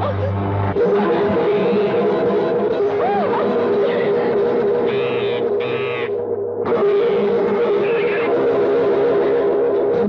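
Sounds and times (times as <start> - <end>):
background music drone: 0.0 - 10.0
parakeet screeching: 4.9 - 6.1.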